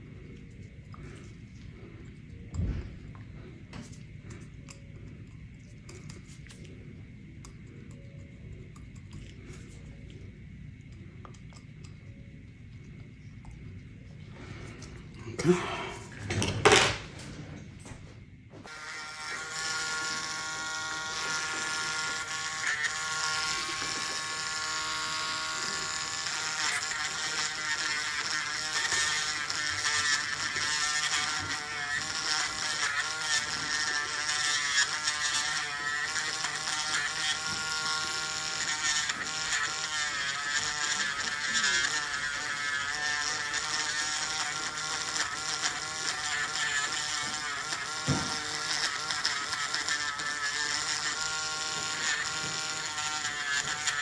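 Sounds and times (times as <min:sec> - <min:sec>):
nail drill buzzing whine: 0:00.0 - 0:17.2, 0:18.6 - 0:54.0.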